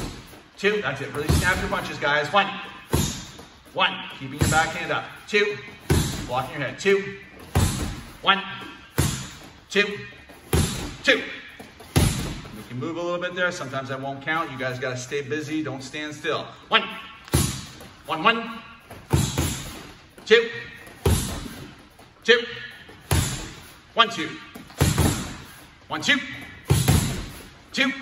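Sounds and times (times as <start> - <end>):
punches thudding on heavy bag: 1.2 - 2.0, 2.8 - 3.4, 4.4 - 4.9, 5.8 - 6.5, 7.5 - 8.2, 8.9 - 9.4, 10.5 - 11.0, 11.9 - 12.5, 17.3 - 17.8, 19.0 - 19.9, 21.0 - 21.7, 23.1 - 23.6, 24.7 - 25.4, 26.7 - 27.4
punch thudding on heavy bag: 5.9 - 6.3, 7.6 - 8.0, 12.0 - 12.5, 26.7 - 27.3.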